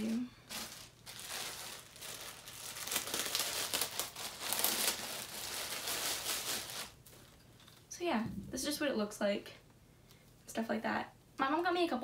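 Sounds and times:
plastic packaging crinkling: 0:00.0 - 0:07.8.

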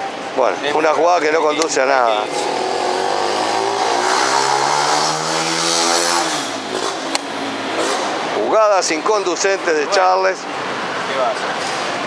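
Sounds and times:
vehicle engine accelerating past: 0:02.4 - 0:07.0.

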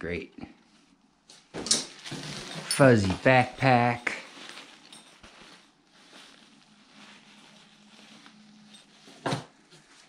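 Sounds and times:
fleece backpack rustling: 0:01.9 - 0:10.0.

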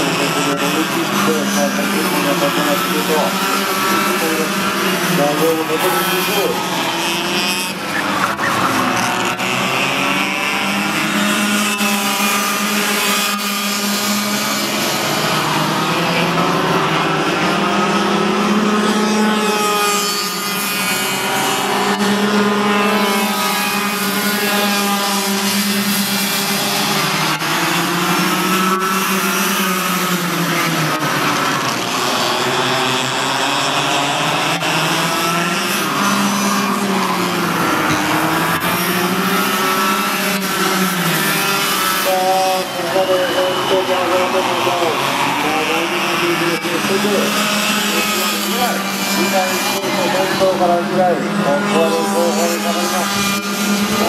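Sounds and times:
kart engines buzzing: 0:00.0 - 0:54.0.

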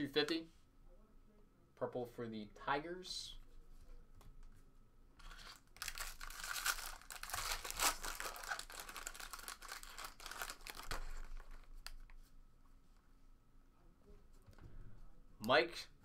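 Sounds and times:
foil pack tearing and crinkling: 0:05.2 - 0:11.7.

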